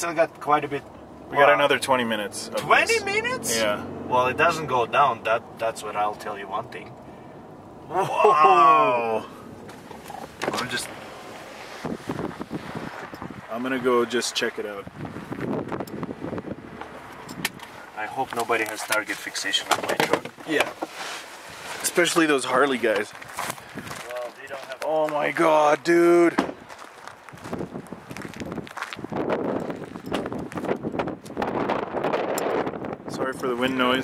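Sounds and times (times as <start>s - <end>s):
wind buffeting microphone: 9.4s - 17.7s, 23.2s - 24.0s, 26.5s - 34.0s.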